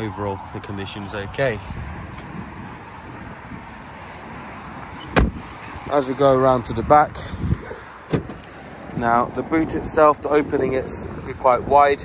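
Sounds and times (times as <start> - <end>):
outdoor background noise: 0.0 - 12.0
car door shutting: 5.0 - 5.5, 8.0 - 9.1.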